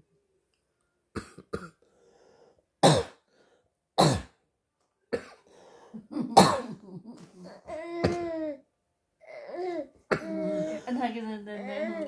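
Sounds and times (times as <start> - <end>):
soft coughing or throat-clearing: 6.0 - 8.4, 10.1 - 10.9
loud coughs: 6.1 - 7.0, 10.1 - 10.9.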